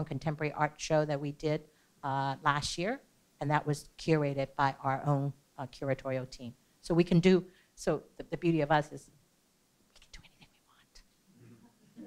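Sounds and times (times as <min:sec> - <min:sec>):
faint whispered voice: 0:09.9 - 0:12.0.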